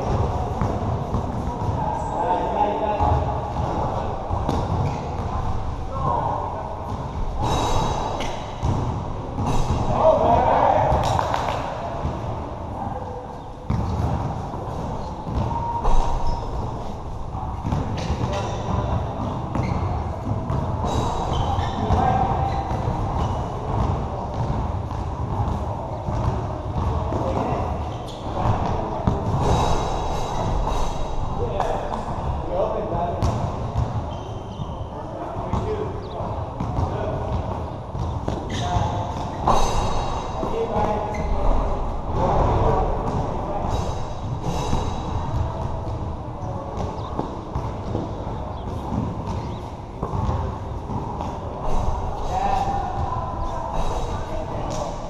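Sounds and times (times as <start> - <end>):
basketball bouncing on court: 0.0 - 1.8, 3.0 - 5.6, 6.8 - 10.0, 13.7 - 16.6, 17.5 - 30.9, 33.2 - 34.8, 36.6 - 42.5, 46.7 - 51.9
players calling out and talking: 0.0 - 55.0.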